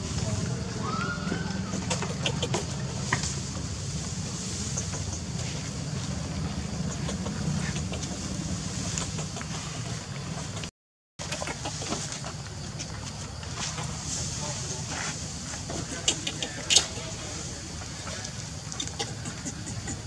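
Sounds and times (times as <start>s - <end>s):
low engine-like hum: 0.0s - 20.0s.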